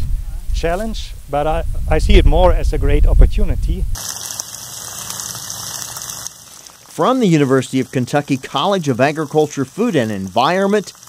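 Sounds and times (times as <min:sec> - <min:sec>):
sprinklers spraying water: 0:04.0 - 0:11.0.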